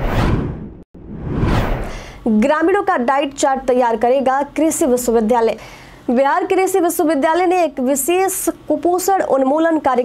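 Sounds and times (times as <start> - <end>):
whoosh transition effects: 0.0 - 2.2.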